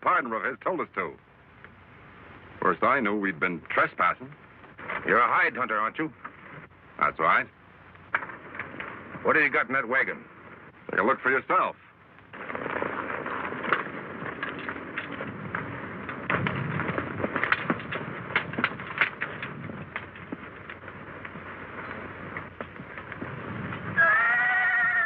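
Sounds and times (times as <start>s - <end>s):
hoof clicks and knocks: 7.9s - 9.8s, 12.1s - 24.6s
horse whinnying: 23.9s - 25.0s.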